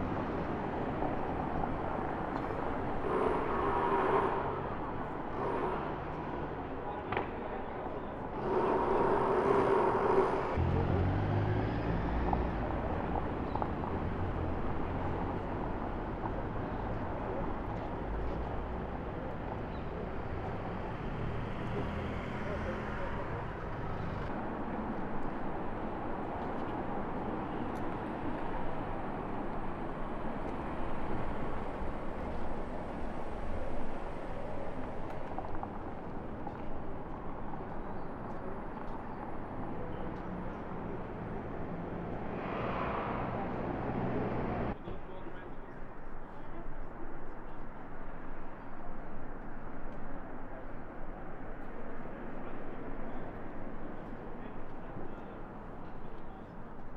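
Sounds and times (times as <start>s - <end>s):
low rumble of passing vehicles: 0.0s - 56.9s
traffic noise: 0.0s - 56.9s.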